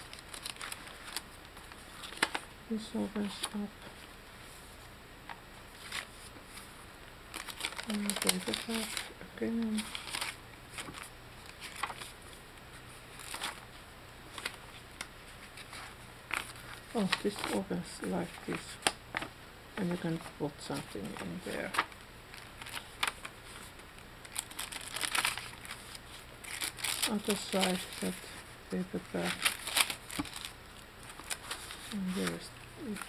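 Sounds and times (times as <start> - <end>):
paper rustling: 0.0 - 2.5, 3.2 - 19.3, 19.9 - 33.0.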